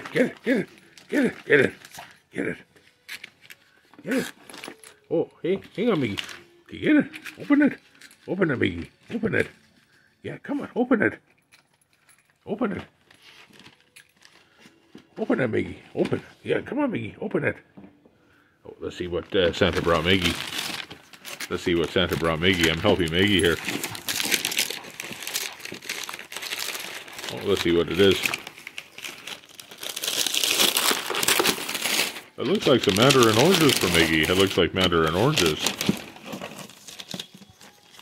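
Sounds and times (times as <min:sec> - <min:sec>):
wrapping paper rustling: 0:00.0 - 0:10.0, 0:12.7 - 0:15.5, 0:18.9 - 0:38.0.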